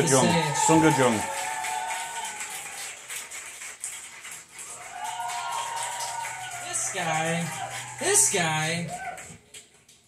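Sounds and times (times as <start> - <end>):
audience clapping and cheering: 0.0 - 10.0.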